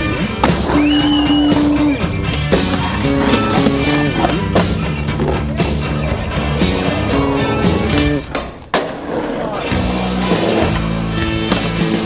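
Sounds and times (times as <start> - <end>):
rock music: 0.0 - 8.7, 9.4 - 12.0
skateboard rolling: 0.0 - 12.0.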